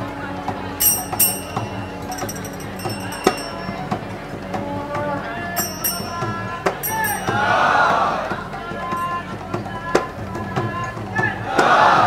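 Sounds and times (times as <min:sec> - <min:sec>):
sharp ringing strikes: 0:00.8 - 0:04.1, 0:05.6 - 0:07.7
crowd cheering: 0:05.4 - 0:12.0.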